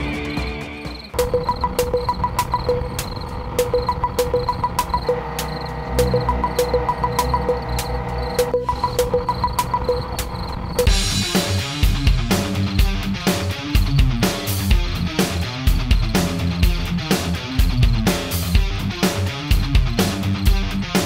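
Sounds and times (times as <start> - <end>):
music: 0.0 - 21.0
ticking beat with picked notes: 0.0 - 21.0
crickets chirping: 0.3 - 11.0.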